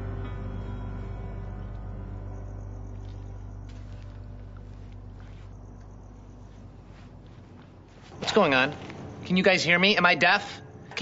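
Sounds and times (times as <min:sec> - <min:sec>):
low rumbling drone: 0:00.0 - 0:08.1.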